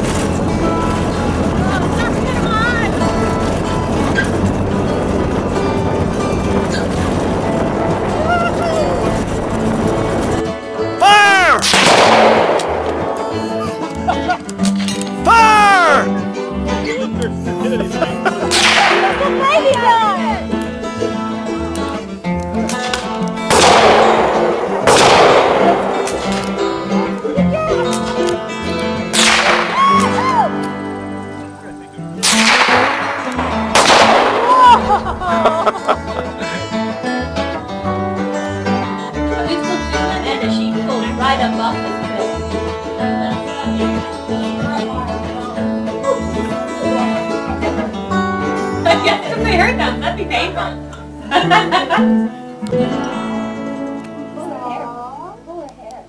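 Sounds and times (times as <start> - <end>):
music track: 0.0 - 55.8
gunshots with ringing tail: 11.6 - 13.7, 18.5 - 19.7, 23.5 - 27.1, 29.1 - 30.2, 32.2 - 35.2.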